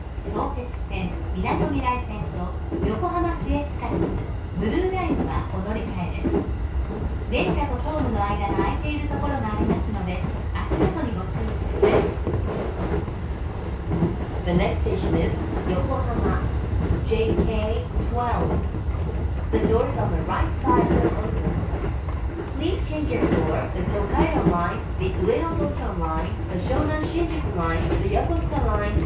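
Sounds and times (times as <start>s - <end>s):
train wheels rumbling on rail: 0.0s - 29.0s.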